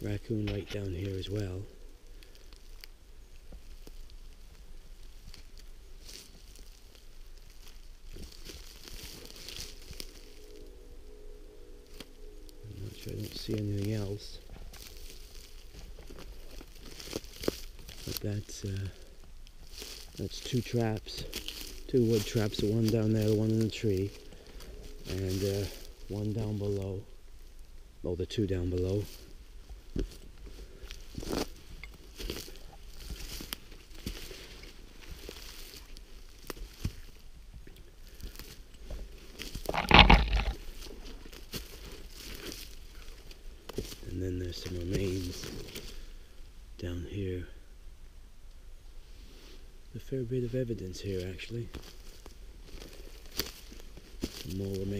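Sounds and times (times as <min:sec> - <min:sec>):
footsteps crunching through dry leaves: 0:00.0 - 0:27.7, 0:28.6 - 0:46.2, 0:51.0 - 0:54.9
rustling scrape: 0:07.6 - 0:19.0, 0:19.6 - 0:26.9, 0:38.3 - 0:46.0.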